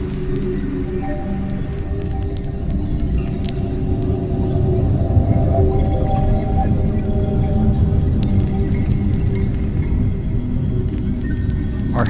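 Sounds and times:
faint clicks: 0.0 - 4.7, 8.0 - 10.2
ambient drone music: 0.0 - 12.0.

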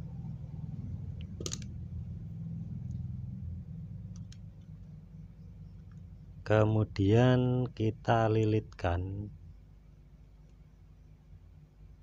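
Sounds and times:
steady low hum: 0.0 - 12.0
faint ticks: 10.3 - 11.2.

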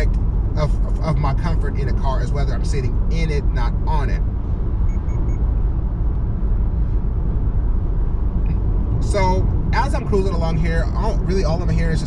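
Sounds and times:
road noise inside car cabin: 0.0 - 12.0.

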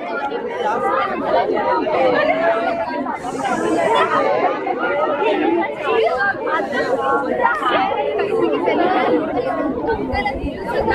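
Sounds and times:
crowd chattering: 0.0 - 10.9.

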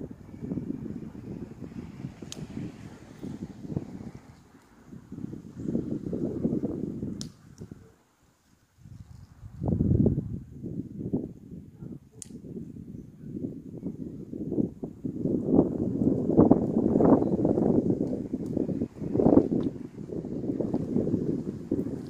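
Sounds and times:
wind buffeting microphone: 0.0 - 8.0, 8.7 - 22.0.

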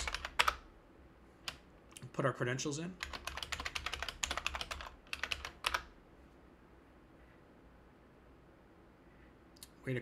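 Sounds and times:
computer keyboard typing: 0.0 - 0.7, 3.0 - 5.9.

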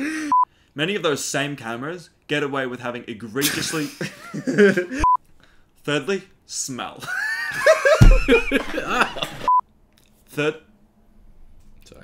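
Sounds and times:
men laughing: 3.4 - 5.1, 7.0 - 9.5.

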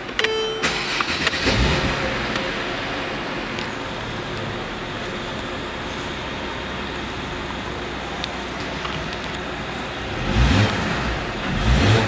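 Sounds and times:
car engine starting and idling: 0.0 - 12.0
short tone: 0.2 - 1.1.

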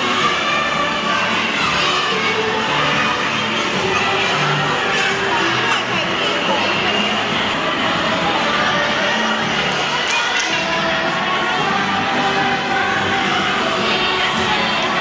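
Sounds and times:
children chattering and shouting: 0.0 - 15.0
music: 0.0 - 15.0.

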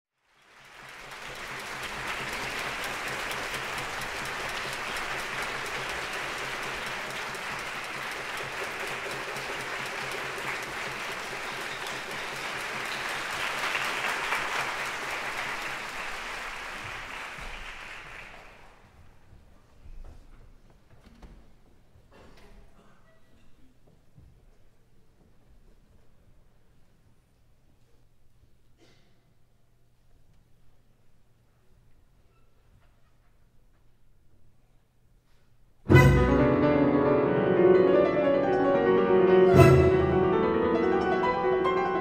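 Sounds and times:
audience applause: 0.2 - 19.0.

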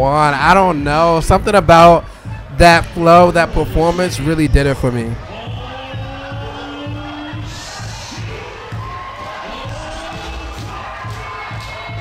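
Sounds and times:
crowd cheering: 0.0 - 12.0
dance music with kick drum: 0.0 - 12.0.

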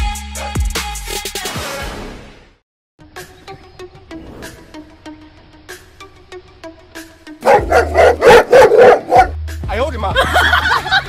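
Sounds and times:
dog barking angrily: 7.4 - 9.4.

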